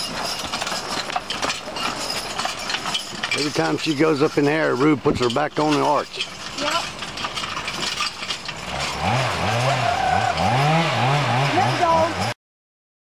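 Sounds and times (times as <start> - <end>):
horse-drawn cart rattling: 0.0 - 12.3
log dragging over forest floor: 7.3 - 12.3.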